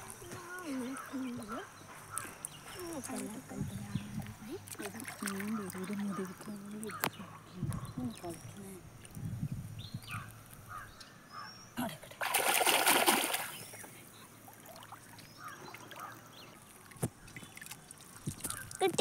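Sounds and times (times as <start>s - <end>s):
water splashing and sloshing: 0.0s - 9.7s, 12.1s - 19.0s.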